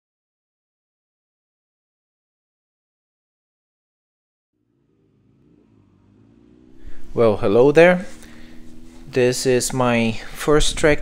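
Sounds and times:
faint motorcycle engine: 0:04.5 - 0:11.0.

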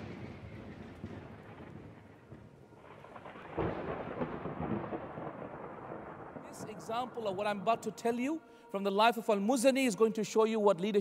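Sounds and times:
low thunder-like rumble: 0:00.0 - 0:07.9.

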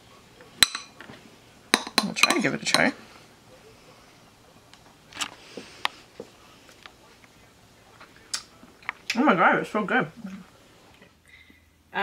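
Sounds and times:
metal spoon clinking on ceramic bowl: 0:00.6 - 0:00.9, 0:01.8 - 0:02.9.

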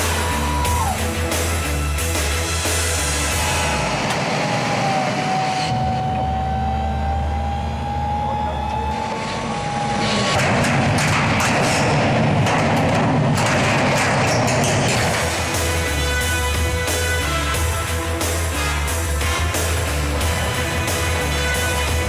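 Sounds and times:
excavator engine whine: 0:01.2 - 0:11.1.

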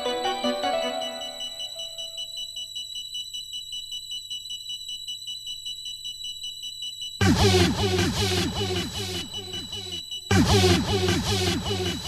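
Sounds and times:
synthesizer melody: 0:00.0 - 0:02.3, 0:07.2 - 0:12.0
sustained high synth tones: 0:00.0 - 0:02.5, 0:07.2 - 0:12.0
soft regular pulse: 0:01.0 - 0:12.0.

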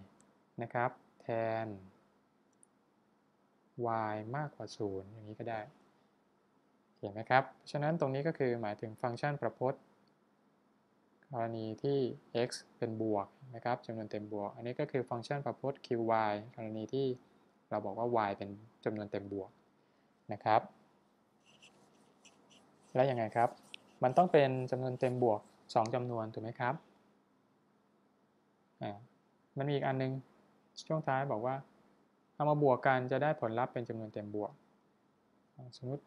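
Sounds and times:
man speaking: 0:00.6 - 0:01.9, 0:03.8 - 0:05.7, 0:07.0 - 0:09.8, 0:11.3 - 0:19.5, 0:20.3 - 0:20.7, 0:22.9 - 0:26.8, 0:28.8 - 0:30.2, 0:30.8 - 0:31.6, 0:32.4 - 0:34.5, 0:35.6 - 0:36.0
stylus scratching on tablet: 0:21.4 - 0:25.8.

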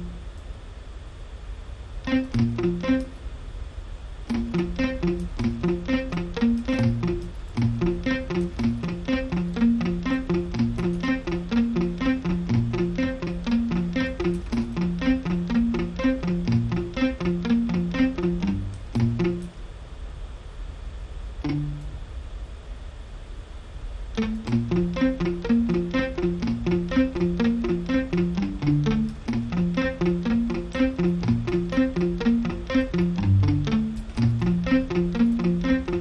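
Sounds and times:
muted guitar plucking: 0:00.0 - 0:00.2, 0:02.1 - 0:03.2, 0:04.3 - 0:19.6, 0:21.4 - 0:22.0, 0:24.2 - 0:36.0.

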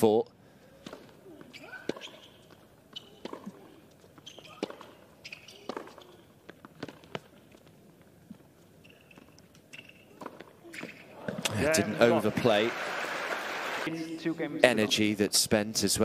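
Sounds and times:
shoes squeaking on court: 0:00.8 - 0:11.4
racquet striking ball: 0:04.4 - 0:06.1.

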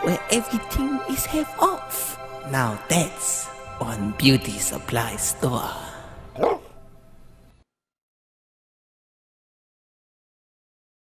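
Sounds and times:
background music chord: 0:00.0 - 0:07.6.

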